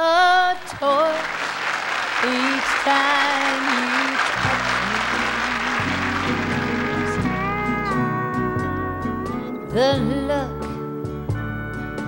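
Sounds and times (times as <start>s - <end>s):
applause: 0.9s - 7.5s
acoustic guitar country ballad: 2.6s - 12.0s.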